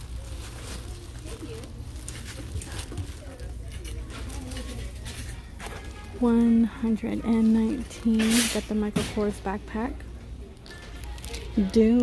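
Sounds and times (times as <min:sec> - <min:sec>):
handbags rustling: 0:00.0 - 0:09.8
faint voices: 0:00.0 - 0:12.0.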